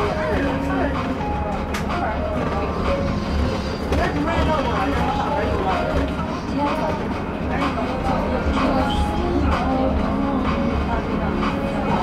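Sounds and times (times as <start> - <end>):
bus road rumble: 0.0 - 12.0
indistinct voices: 0.0 - 12.0.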